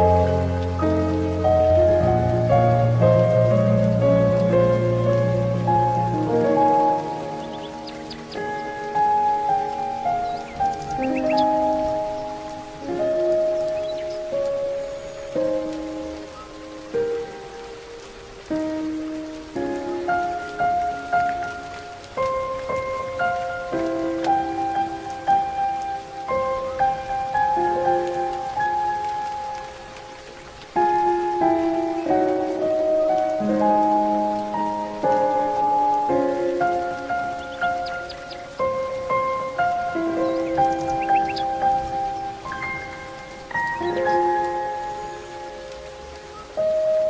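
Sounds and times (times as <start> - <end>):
faint steady hiss: 0.0 - 47.0
gentle piano music: 0.0 - 47.0
high bird chirps: 10.1 - 12.3, 40.2 - 45.2.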